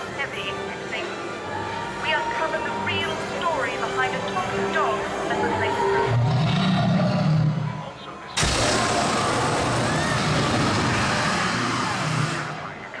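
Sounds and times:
crowd voices: 0:00.0 - 0:13.0
loud rushing fire burst: 0:08.4 - 0:12.8.

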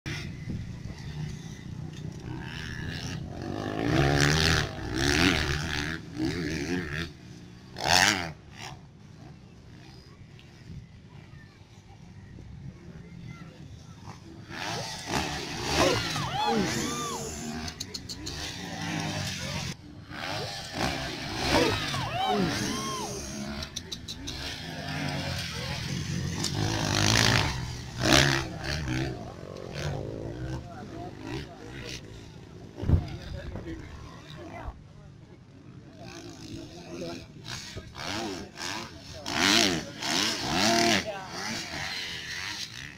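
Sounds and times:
dirt bike engines revving: 0:00.1 - 0:42.9
onlookers shouting: 0:15.7 - 0:17.5, 0:21.4 - 0:23.4.

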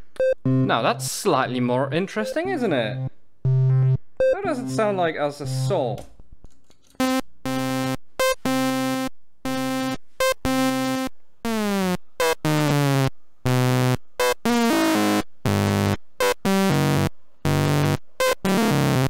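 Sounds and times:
buzzy synthesizer notes: 0:00.3 - 0:05.8, 0:07.0 - 0:19.0.

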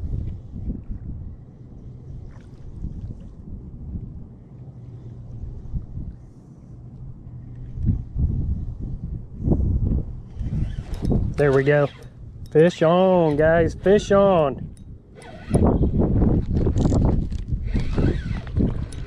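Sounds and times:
distant outboard motor hum: 0:00.0 - 0:16.0
wind rumbling on microphone: 0:00.0 - 0:19.0.

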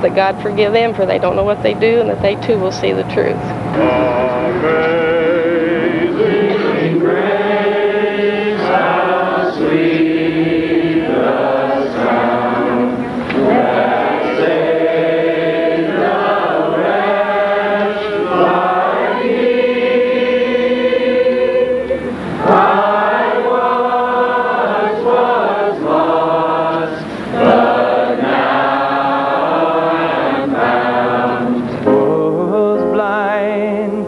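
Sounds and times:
group singing in unison: 0:03.6 - 0:32.6.

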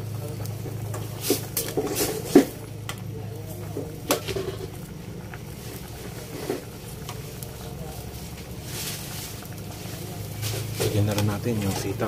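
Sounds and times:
water bubbling in a pot: 0:00.0 - 0:12.0.

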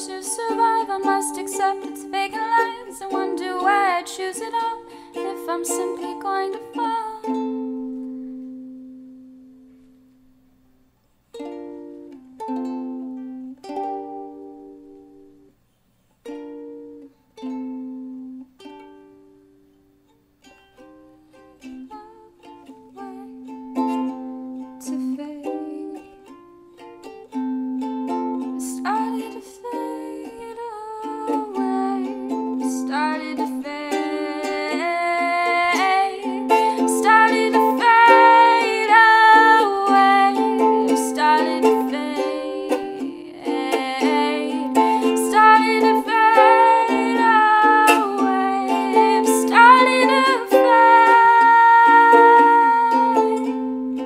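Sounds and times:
ukulele plucked notes: 0:00.0 - 0:15.6, 0:16.2 - 0:54.0.

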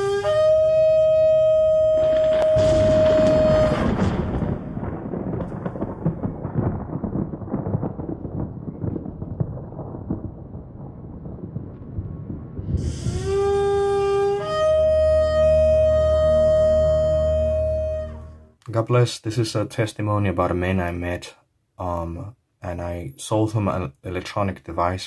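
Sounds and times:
horn blast: 0:00.0 - 0:04.6, 0:12.8 - 0:18.6
rumble of thunder: 0:01.3 - 0:15.1.

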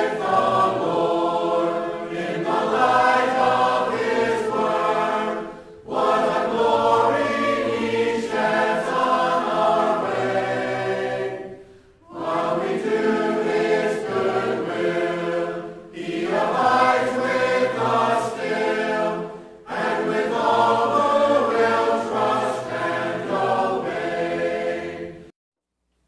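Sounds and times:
choir singing: 0:00.0 - 0:25.3.

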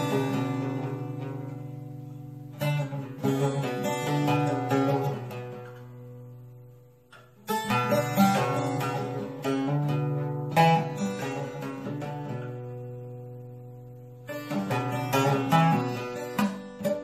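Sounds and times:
long-necked lute playing: 0:00.0 - 0:17.0.

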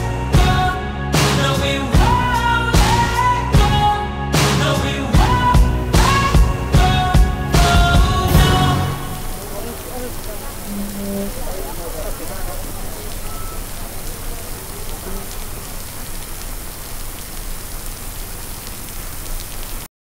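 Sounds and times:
heavy rain pouring on street: 0:00.0 - 0:19.9.

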